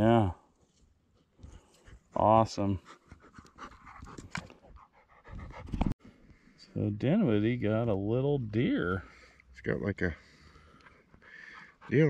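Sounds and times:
dog panting: 0:02.8 - 0:06.0, 0:11.0 - 0:12.0.

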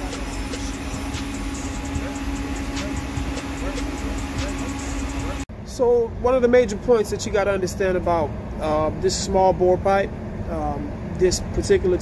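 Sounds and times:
machine hum with low rumble: 0:00.0 - 0:12.0.

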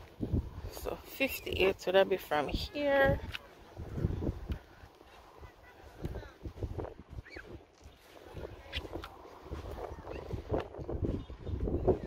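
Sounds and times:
wind rumbling on microphone: 0:00.0 - 0:12.0.

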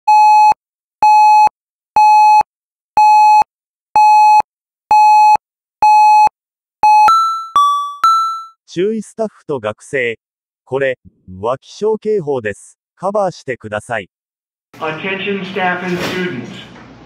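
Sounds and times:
two-tone chime: 0:06.9 - 0:08.6
intercom announcement: 0:14.8 - 0:16.8.

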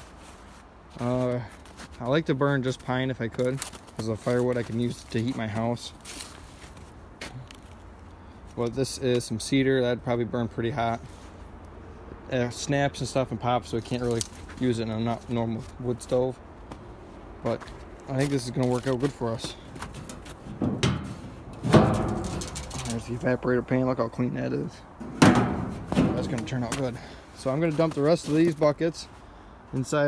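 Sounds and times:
footsteps crunching in snow: 0:00.0 - 0:07.9, 0:13.8 - 0:20.5, 0:26.2 - 0:30.0
metal pan knocking and scraping: 0:19.9 - 0:23.0.

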